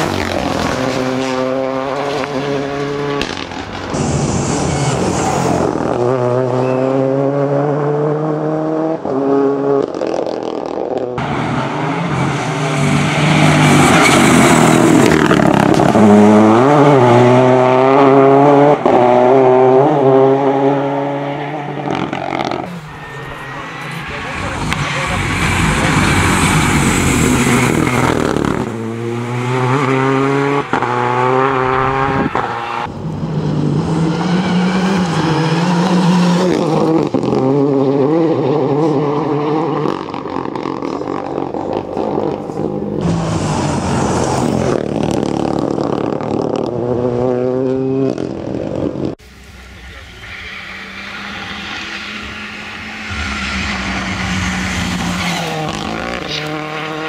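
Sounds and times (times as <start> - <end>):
rally car engine revving: 0.0 - 57.0.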